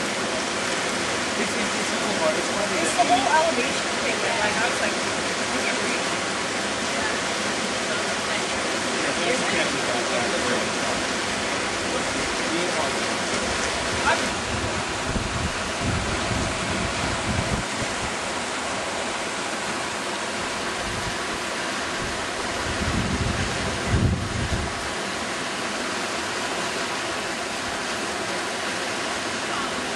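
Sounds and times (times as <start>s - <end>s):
whitewater river rapids rushing: 0.0s - 29.9s
wind buffeting microphone: 13.4s - 18.3s, 20.7s - 25.0s.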